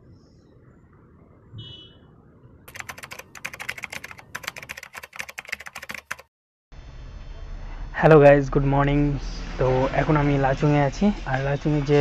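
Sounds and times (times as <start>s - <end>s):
rapid irregular clicking: 2.7s - 6.3s.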